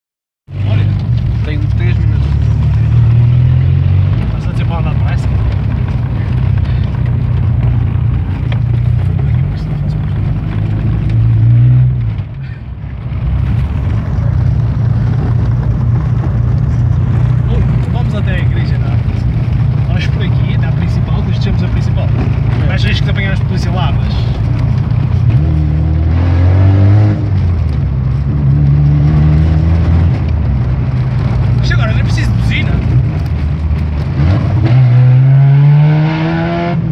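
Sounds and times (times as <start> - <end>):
car exhaust drone: 0.5 - 36.9.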